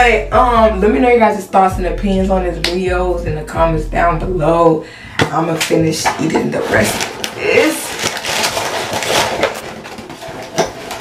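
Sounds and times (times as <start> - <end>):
cardboard box rustling: 6.6 - 11.0.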